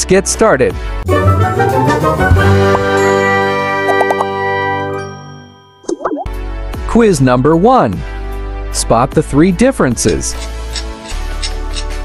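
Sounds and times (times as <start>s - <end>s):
bell-like chime: 4.8s - 5.9s.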